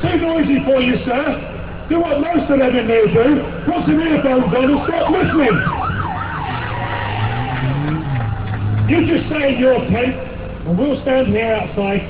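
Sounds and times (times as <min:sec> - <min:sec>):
vehicle engine: 0:00.0 - 0:12.0
siren: 0:03.3 - 0:08.6.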